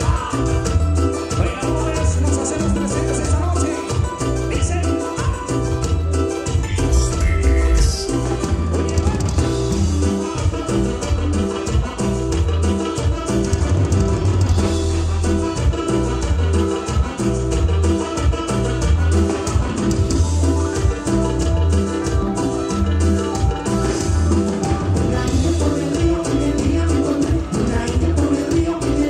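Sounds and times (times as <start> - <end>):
live cumbia band playing: 0.0 - 29.0.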